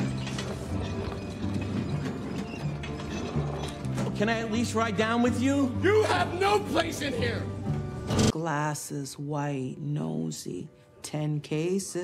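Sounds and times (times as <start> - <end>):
luggage cart rattling: 0.0 - 5.7.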